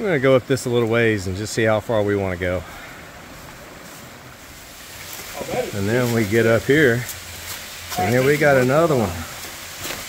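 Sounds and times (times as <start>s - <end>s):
creek rushing over rocks: 0.0s - 10.0s.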